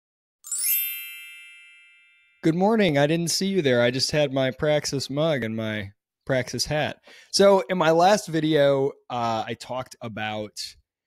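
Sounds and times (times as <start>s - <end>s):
bright bell-like chime: 0.4s - 2.6s.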